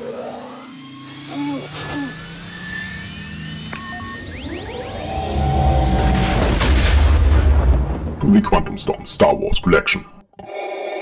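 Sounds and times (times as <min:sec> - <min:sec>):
sci-fi synthesizer music: 0:00.0 - 0:06.9
low spaceship engine rumble: 0:00.0 - 0:08.4.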